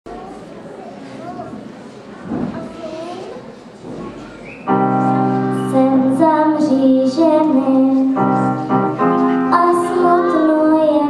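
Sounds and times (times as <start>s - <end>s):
faint voices: 0.1s - 11.0s
grand piano chord: 4.7s - 11.0s.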